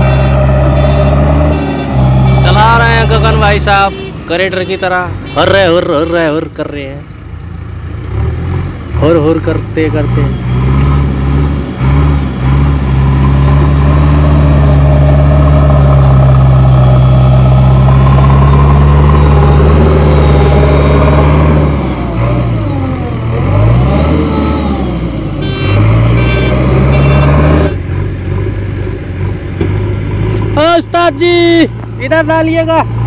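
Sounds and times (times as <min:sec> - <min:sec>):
diesel engine working under load: 0:00.0 - 0:33.0
short high beeps: 0:25.4 - 0:27.4.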